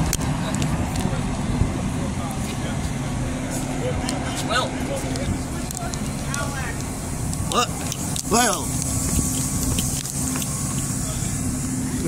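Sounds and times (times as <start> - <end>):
low train engine hum: 0.0 - 12.0.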